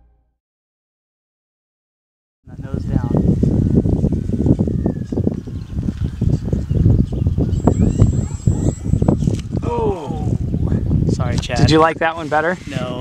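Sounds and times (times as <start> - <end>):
wind buffeting microphone: 2.5 - 13.0
electric motor whine: 7.1 - 10.4.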